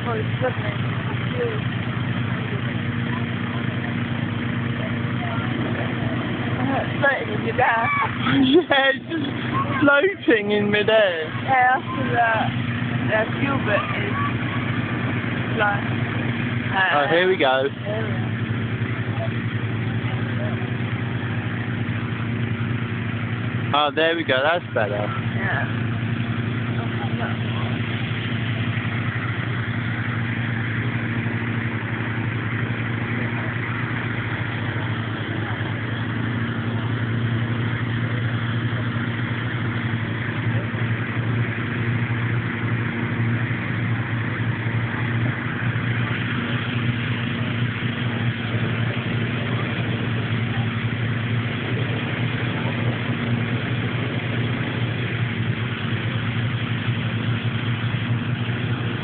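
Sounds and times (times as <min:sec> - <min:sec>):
engine running steadily: 0:00.0 - 0:59.0.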